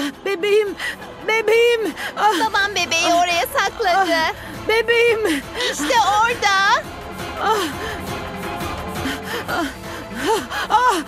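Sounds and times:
soft background music: 0:00.0 - 0:11.0
woman gasping cries: 0:07.3 - 0:08.3, 0:09.0 - 0:11.0.

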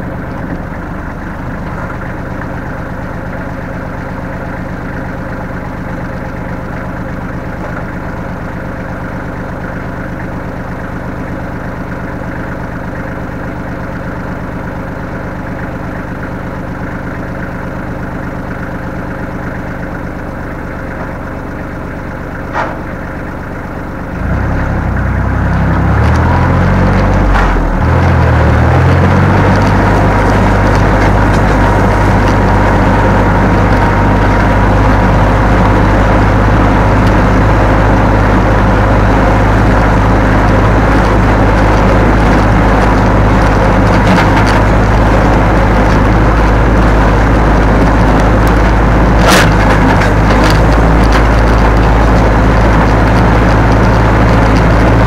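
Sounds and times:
tractor diesel engine: 0:00.0 - 0:55.0.

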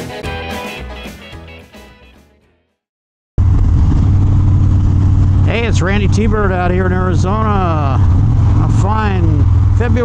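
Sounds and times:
music: 0:00.0 - 0:02.9
wind on microphone: 0:03.4 - 0:08.8
motorcycle engine running: 0:03.4 - 0:10.0
man's voice: 0:05.4 - 0:08.0, 0:08.6 - 0:10.0.

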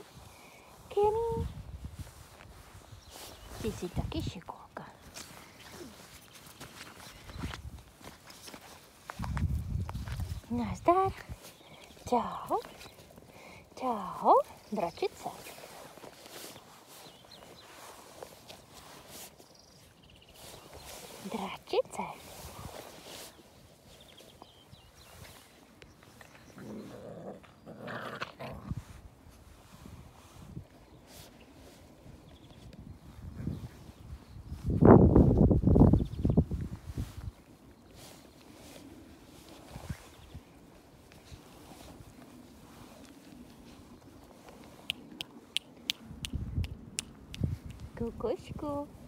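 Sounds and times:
puppies scuffing on grass: 0:00.0 - 0:26.6, 0:28.7 - 0:45.8
puppies growling: 0:26.5 - 0:28.8.

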